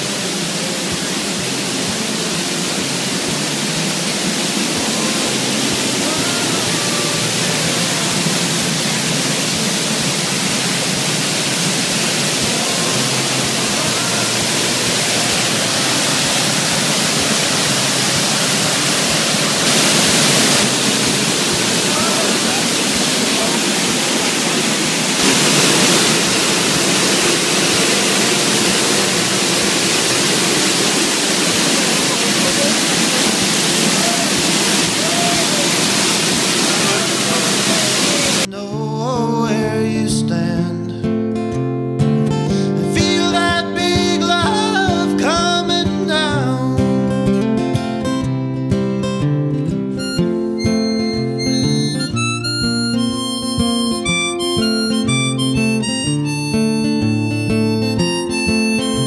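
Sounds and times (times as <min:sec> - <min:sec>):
waterfall rushing onto rocks: 0:00.0 - 0:38.5, 0:50.8 - 0:59.0.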